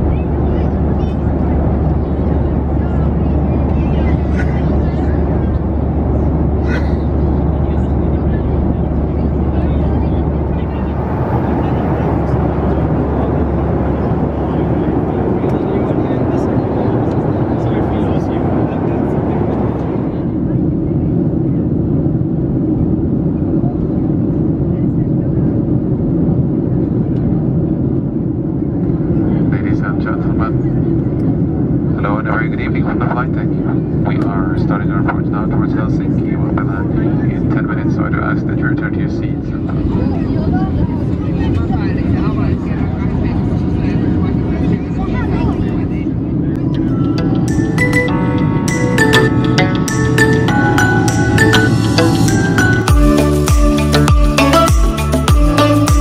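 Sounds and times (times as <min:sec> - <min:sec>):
muffled voices: 0:00.0 - 0:52.9
jet engine roar in cabin: 0:00.0 - 0:54.6.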